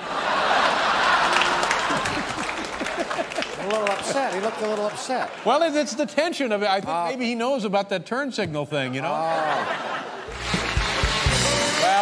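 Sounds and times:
audience applauding: 0.0 - 6.1, 10.3 - 12.0.

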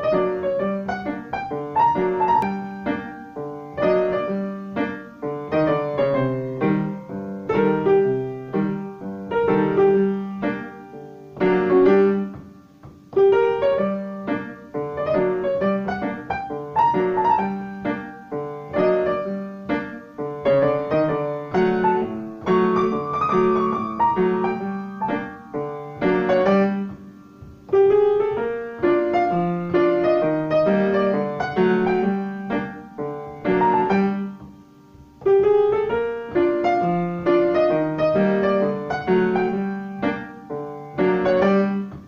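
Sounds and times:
piano melody: 0.0 - 42.0.

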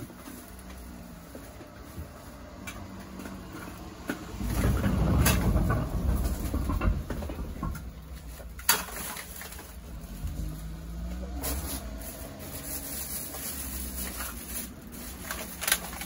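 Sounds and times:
plastic bag of bottles crinkling: 0.0 - 16.0
low rumble: 4.2 - 8.7.

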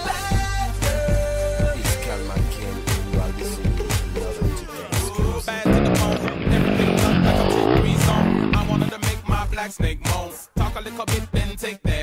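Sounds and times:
pop hip-hop music: 0.0 - 12.0
dirt bike engine revving: 5.6 - 9.0.

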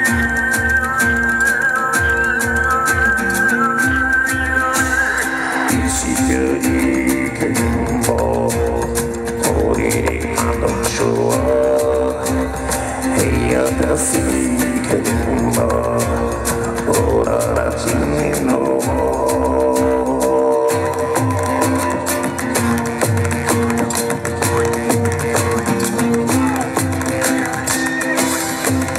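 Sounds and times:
amplified acoustic guitar: 0.0 - 28.9
drum kit playing: 2.0 - 28.9
low bass: 3.9 - 27.6.

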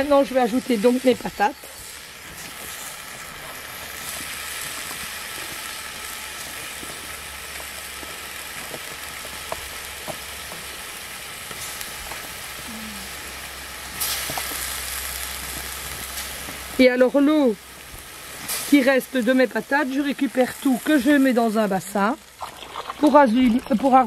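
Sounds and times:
vegetables sizzling in a pot: 0.0 - 24.0.

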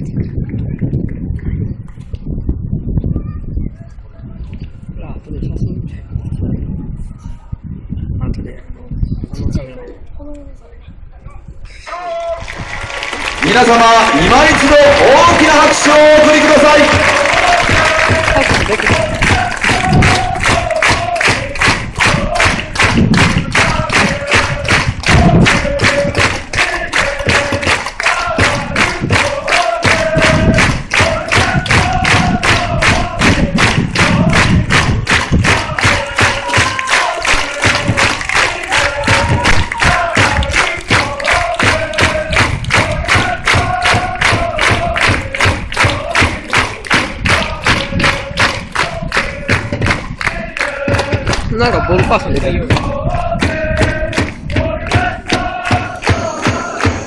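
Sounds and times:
crowd chanting in unison: 11.9 - 57.0
steady drum beat: 13.4 - 57.0.

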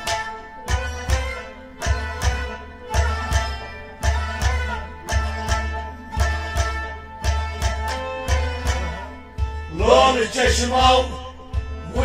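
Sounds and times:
sustained melody instrument: 0.0 - 12.0
hand drum bass strokes: 0.8 - 12.0.

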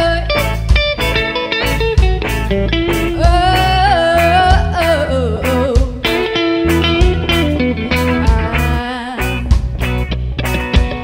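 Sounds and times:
woman singing: 0.0 - 0.7, 3.1 - 6.4, 8.0 - 9.6
drum kit: 0.0 - 11.0
electric guitar: 0.0 - 11.0.

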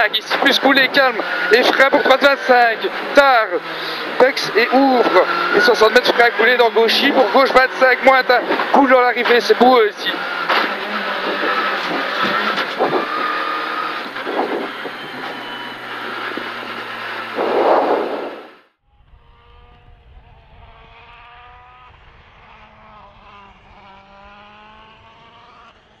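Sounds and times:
car engine and road noise: 0.0 - 26.0
rally car engine revving: 0.0 - 26.0.

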